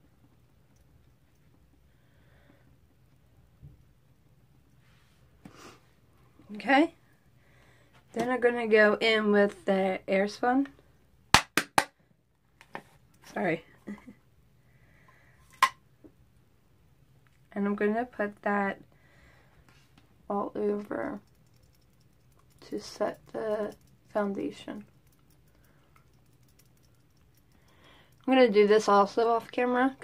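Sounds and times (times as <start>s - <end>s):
faint clicks: 21.2s - 28.3s.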